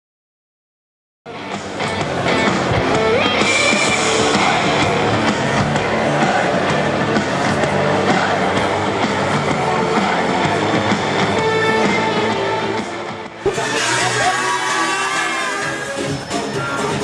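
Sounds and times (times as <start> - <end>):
background music: 1.3 - 17.0.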